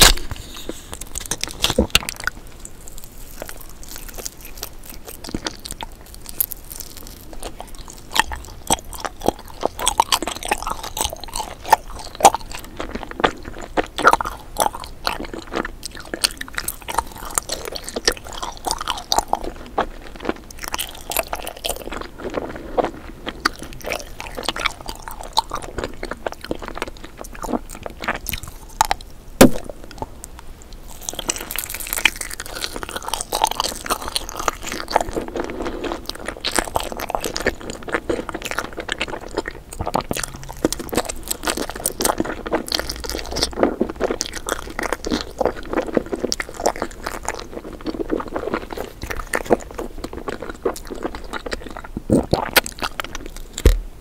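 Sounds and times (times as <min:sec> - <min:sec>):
chewing jelly candy: 0:00.0 - 0:53.8.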